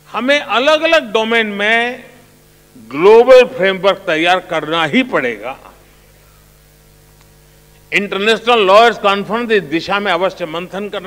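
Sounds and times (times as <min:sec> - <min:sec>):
electrical mains hum: 0:00.0 - 0:11.0
man speaking: 0:00.1 - 0:02.2, 0:02.8 - 0:05.8, 0:07.9 - 0:11.0
faint click: 0:07.1 - 0:07.4.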